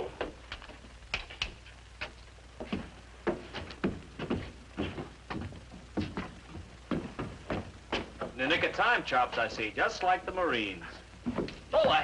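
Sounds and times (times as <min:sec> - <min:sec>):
footsteps on wooden boards: 0:00.1 - 0:08.5, 0:11.0 - 0:12.0.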